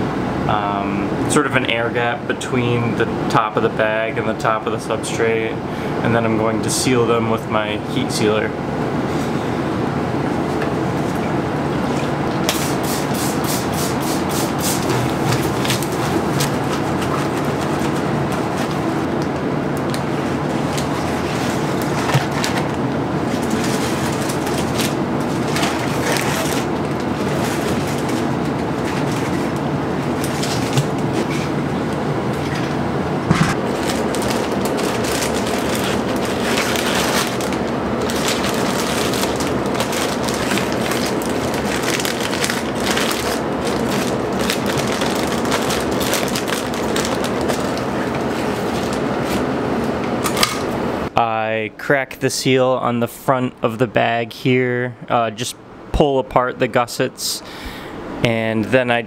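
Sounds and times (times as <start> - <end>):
blower whooshing and humming: 7.5 - 51.2.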